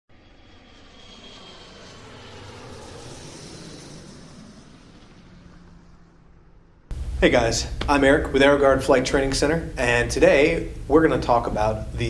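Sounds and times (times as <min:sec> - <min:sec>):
airplane engine drone: 0:00.1 - 0:12.0.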